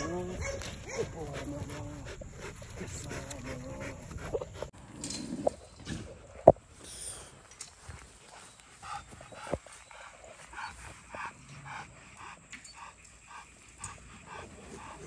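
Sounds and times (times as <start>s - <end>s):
dog panting: 0.0s - 4.7s, 7.8s - 15.0s.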